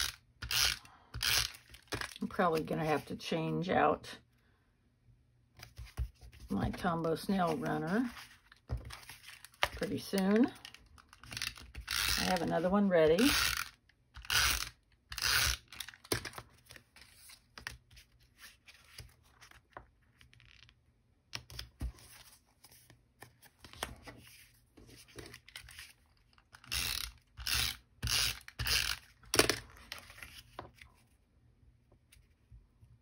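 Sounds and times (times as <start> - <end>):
paper and card handling: 0.8 - 3.1, 5.5 - 31.3.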